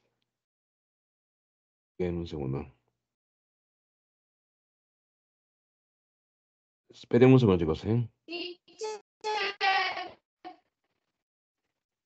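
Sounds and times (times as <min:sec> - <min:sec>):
voice through video call: 0:02.0 - 0:02.9, 0:06.9 - 0:10.2.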